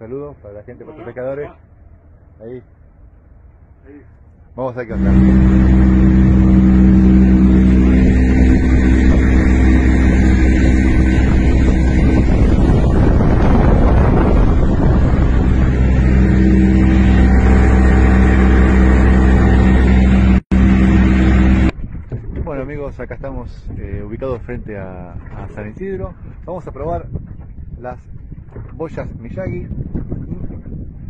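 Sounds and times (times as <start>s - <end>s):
outboard motor drone: 4.8s - 23.2s
wind on microphone: 4.9s - 31.0s.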